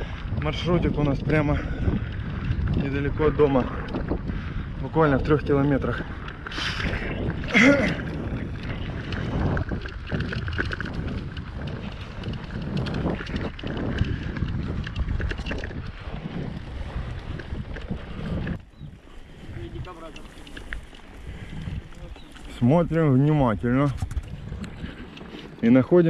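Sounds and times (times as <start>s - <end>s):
bike rattles and clicks: 0.0s - 26.0s
tyres rolling on dirt trail: 0.0s - 26.0s
wind on microphone: 0.0s - 26.0s.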